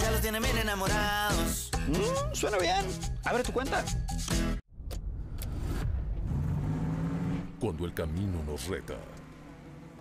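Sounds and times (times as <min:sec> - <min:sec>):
car engine rumbling: 0:04.8 - 0:10.0.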